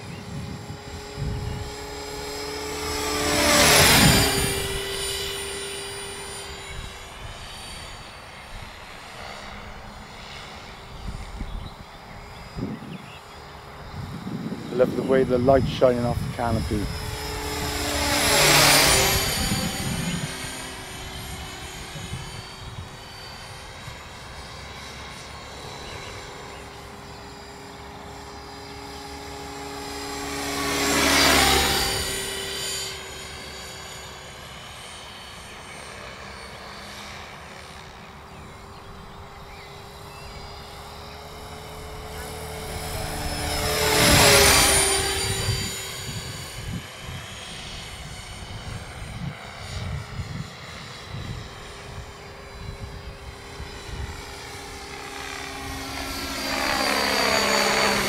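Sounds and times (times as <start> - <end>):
steady hum: 0.0 - 50.5
rc helicopter rotor whine: 0.0 - 58.0.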